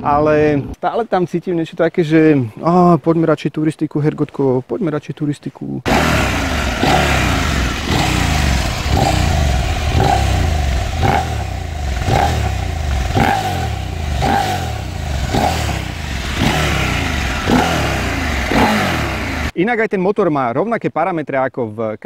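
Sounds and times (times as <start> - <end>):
motorcycle engine revving: 5.9 - 19.6.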